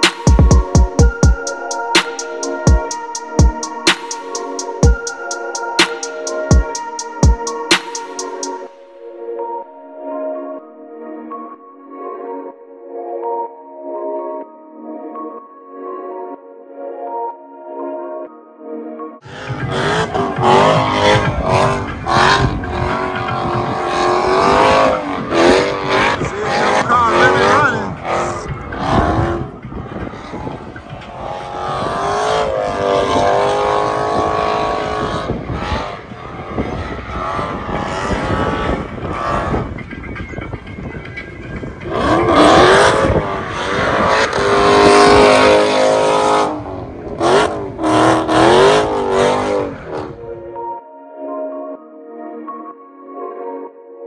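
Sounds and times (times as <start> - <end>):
car engine revving: 19.3 - 39.9, 41.5 - 50.2.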